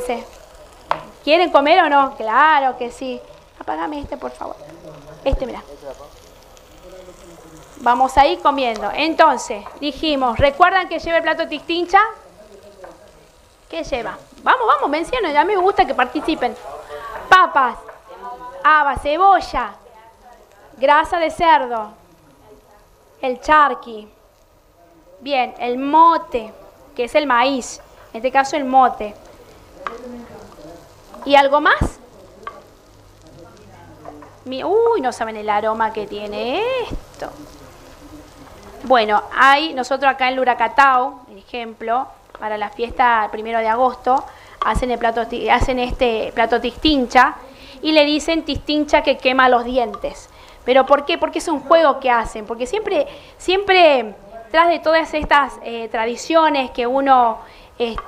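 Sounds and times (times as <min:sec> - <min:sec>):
woman speaking: 0:00.0 - 0:00.4, 0:01.1 - 0:04.6, 0:05.2 - 0:06.0, 0:07.8 - 0:12.2, 0:13.7 - 0:22.0, 0:22.6 - 0:24.1, 0:25.2 - 0:29.2, 0:31.1 - 0:32.0, 0:34.4 - 0:37.4, 0:38.8 - 0:58.0
food sizzling in a pan: 0:00.0 - 0:58.0.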